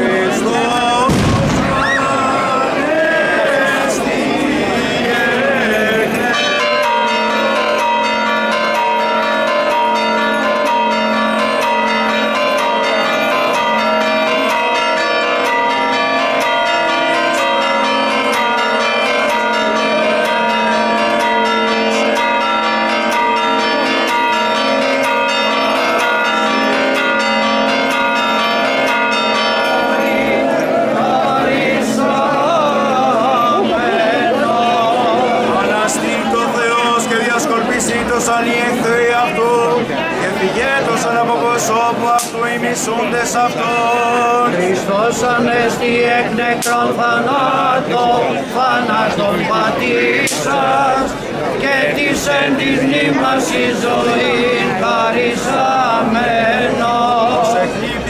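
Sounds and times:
men chanting a hymn: 0.0s - 9.1s, 10.6s - 58.0s
church bells pealing: 0.0s - 58.0s.

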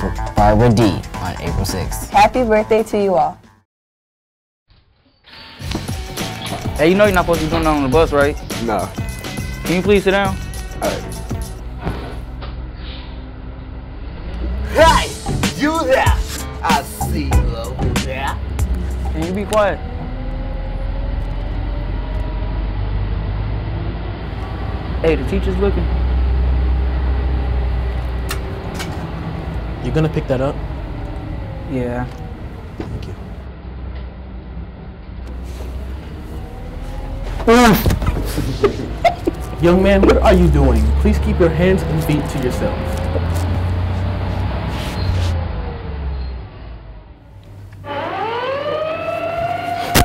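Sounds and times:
bus engine rumble: 6.3s - 47.8s
siren rising in pitch: 18.4s - 22.8s, 24.2s - 33.4s, 35.7s - 37.8s, 47.8s - 50.0s.

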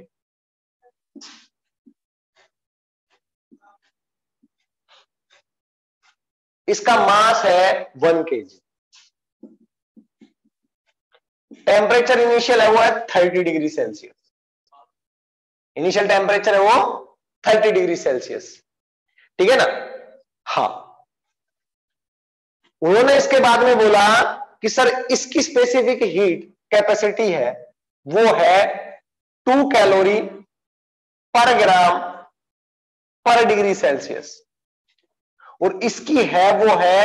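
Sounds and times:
marker squeaking on whiteboard: 1.2s - 6.3s
man speaking: 6.7s - 8.7s, 11.5s - 14.2s, 15.8s - 18.7s, 19.4s - 21.0s, 22.8s - 30.5s, 31.4s - 32.3s, 33.3s - 34.4s, 35.6s - 37.0s.

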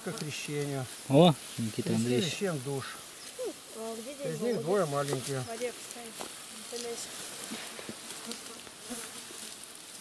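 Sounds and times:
insects buzzing in grass: 0.0s - 10.0s
soft rustles: 0.0s - 10.0s
steady high hiss: 0.0s - 10.0s.

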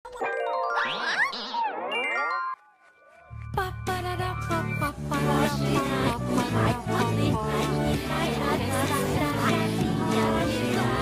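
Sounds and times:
cartoon jingle with chiming notes: 0.1s - 2.9s
swooping pitch tones: 0.2s - 3.4s.

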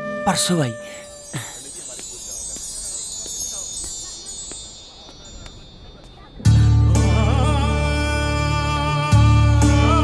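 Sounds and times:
chimes ringing: 0.0s - 7.5s.

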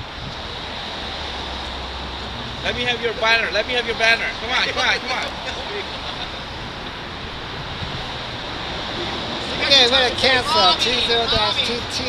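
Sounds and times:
wind on microphone: 0.0s - 2.7s, 6.5s - 9.6s
low rumble of street traffic: 0.0s - 12.0s.

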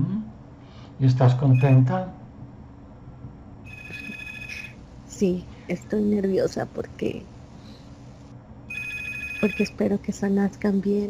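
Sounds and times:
faint low hum: 0.0s - 11.0s
electronic alert tone: 1.5s - 1.9s, 3.7s - 4.8s.

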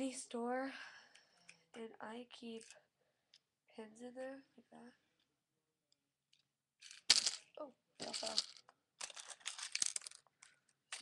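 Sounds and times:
safety pins clattering out: 8.0s - 10.2s.

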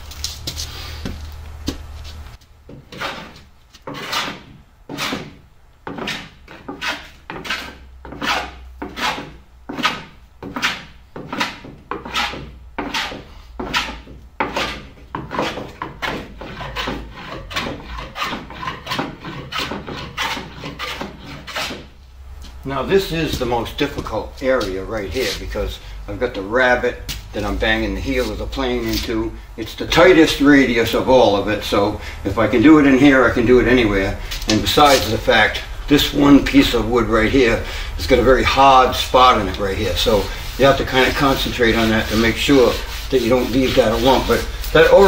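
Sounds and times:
hand plane shaving wood: 2.9s - 21.9s, 34.5s - 45.0s.

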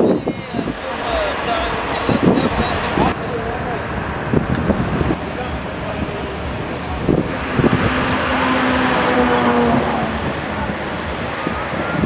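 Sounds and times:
low droning tone: 0.0s - 12.0s
wind noise on microphone: 0.0s - 12.0s.

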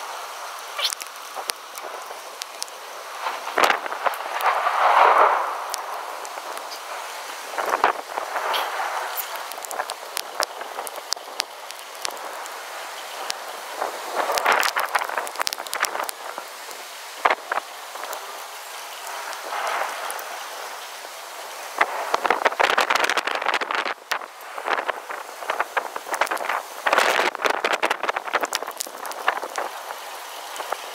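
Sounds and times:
gusting wind: 0.0s - 30.9s
rain: 0.0s - 30.9s
sharp clicks: 0.8s - 2.8s.

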